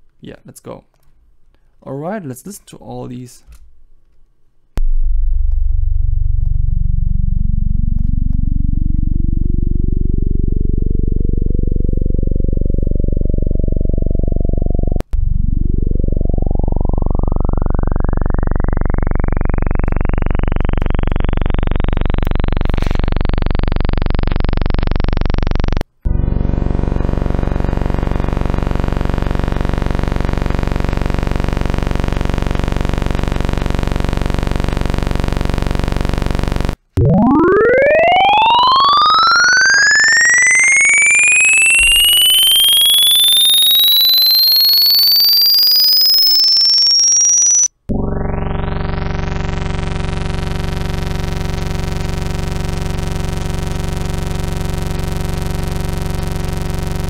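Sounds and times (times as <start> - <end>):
buzzy synthetic tone: 4.8 - 57.0
tone sweeping upward in pitch: 8.5 - 50.3.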